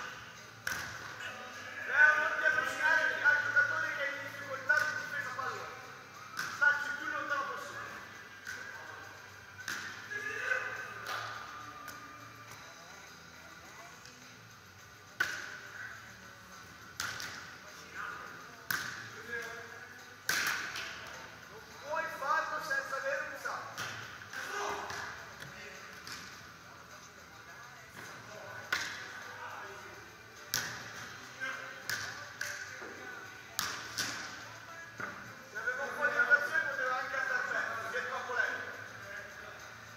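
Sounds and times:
volleyball hits echoing in hall: 0.0s - 1.2s, 6.2s - 7.2s, 9.6s - 12.6s, 15.1s - 16.2s, 16.9s - 17.6s, 18.6s - 19.5s, 20.2s - 21.2s, 23.7s - 26.4s, 28.0s - 29.2s, 30.4s - 31.2s, 31.8s - 32.8s, 33.4s - 35.2s.

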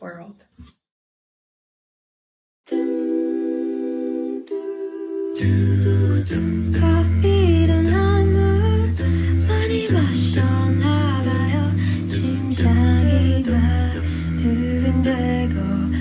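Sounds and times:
a cappella group singing harmonies: 2.7s - 16.0s
held low bass line: 5.4s - 16.0s.

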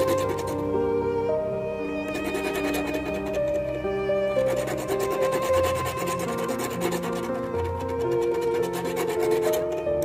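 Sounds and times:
file scraping on wire: 0.0s - 0.6s, 2.1s - 3.8s, 4.4s - 9.9s
soft background music: 0.0s - 10.0s.

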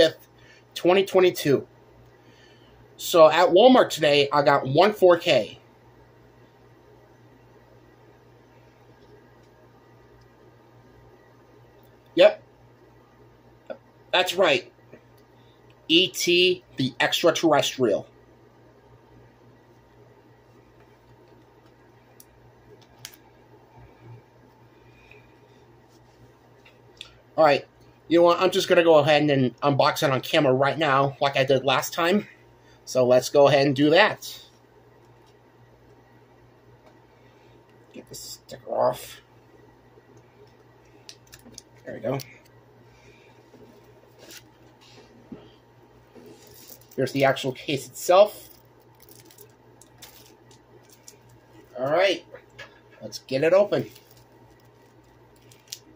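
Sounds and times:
ceiling fan hum: 0.0s - 55.9s.

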